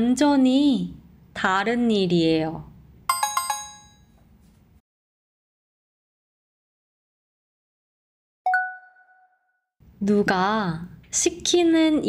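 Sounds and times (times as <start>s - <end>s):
bell-like chime: 3.1s - 4.2s.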